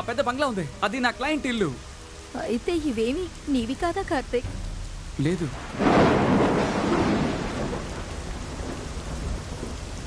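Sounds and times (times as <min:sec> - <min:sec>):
heavy rain: 0:00.0 - 0:10.0
thunder rumbling: 0:03.4 - 0:10.0.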